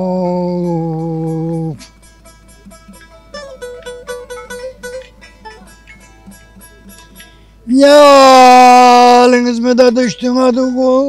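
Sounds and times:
long-necked lute picking: 0.0s - 11.0s.

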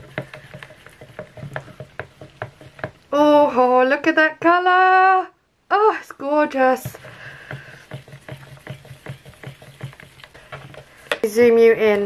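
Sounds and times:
stir stick clicking in plastic cup: 0.0s - 3.1s, 6.9s - 11.3s.

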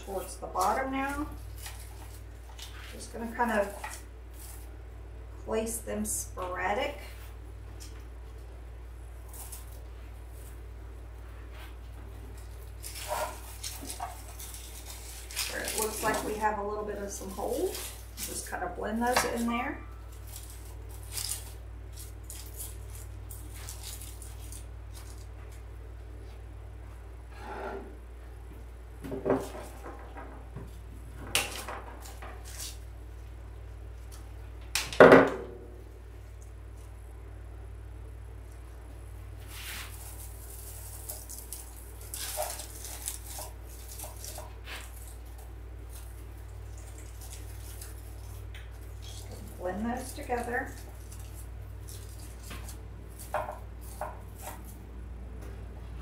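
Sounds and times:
artificial greenery rustling and scraping: 0.0s - 4.9s, 6.5s - 26.4s, 29.3s - 34.4s, 39.3s - 54.9s
steady low hum: 0.0s - 56.0s.

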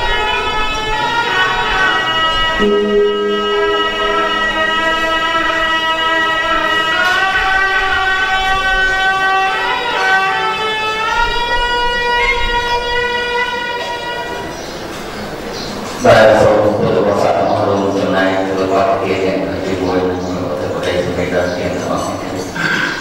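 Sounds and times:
person chanting in long notes: 0.0s - 15.4s, 16.0s - 23.0s.

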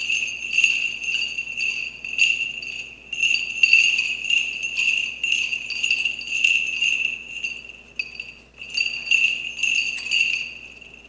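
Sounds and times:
small metal bells jingling: 0.0s - 11.0s.

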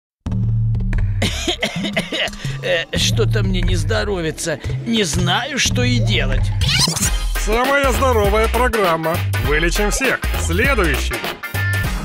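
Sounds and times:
man coughing hoarsely: 1.2s - 2.8s.

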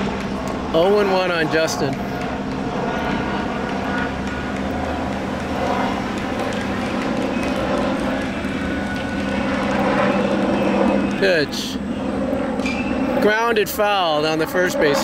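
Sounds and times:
helicopter flying overhead: 0.0s - 15.0s.

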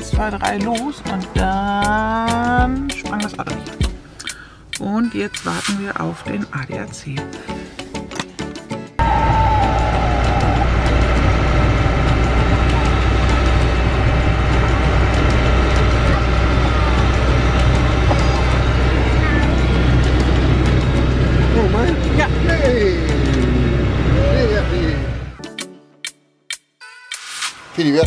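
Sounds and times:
road and engine noise: 1.9s - 25.4s.

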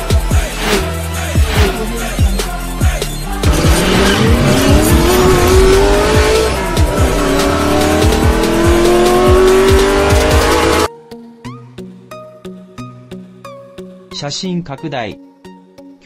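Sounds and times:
music with steady beat: 0.0s - 10.9s
race car engine revving: 3.4s - 10.9s.

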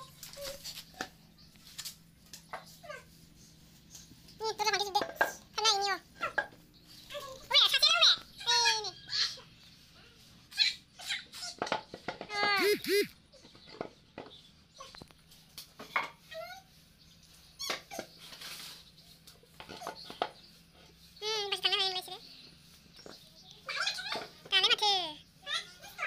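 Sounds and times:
young boy's voice: 4.4s - 6.1s, 7.1s - 9.0s, 12.3s - 13.1s, 23.6s - 26.0s
boy making squeal-like sounds: 12.4s - 13.1s
child breathy vocal sounds: 12.6s - 13.1s.

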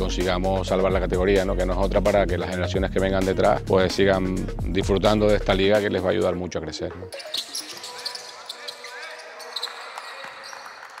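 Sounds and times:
sneaker squeaks on floor: 7.1s - 10.9s.

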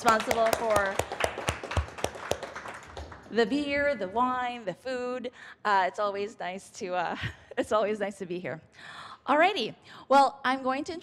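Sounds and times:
hand claps: 0.0s - 3.6s.

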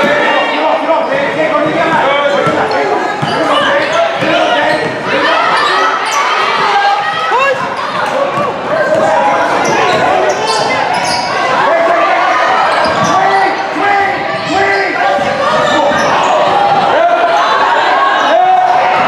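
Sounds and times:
shouts and chatter in a hall: 0.0s - 19.0s.

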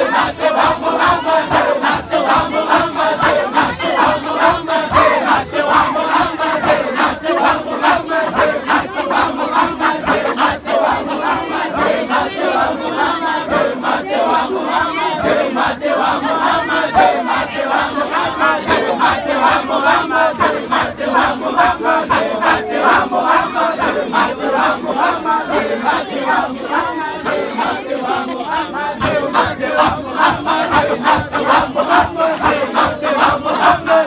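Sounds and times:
crowd chanting together: 0.0s - 34.0s.

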